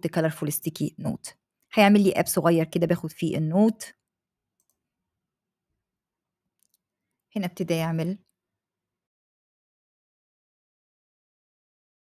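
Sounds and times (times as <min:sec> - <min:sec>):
computer mouse clicks: 0:04.6 - 0:04.8.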